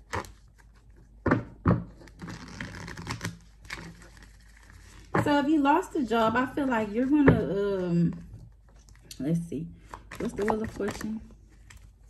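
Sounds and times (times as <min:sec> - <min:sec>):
cards being shuffled: 0:02.0 - 0:05.1.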